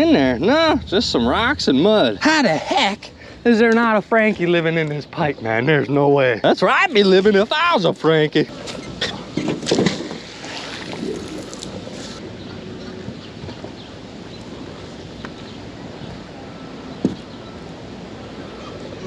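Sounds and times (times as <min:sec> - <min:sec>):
wind: 0:00.0 - 0:19.0
river water: 0:06.7 - 0:19.0.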